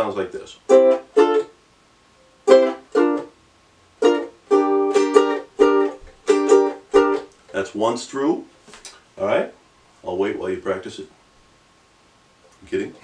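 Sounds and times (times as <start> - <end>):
ukulele chords: 0.7 - 1.6, 2.4 - 3.4, 4.0 - 7.3.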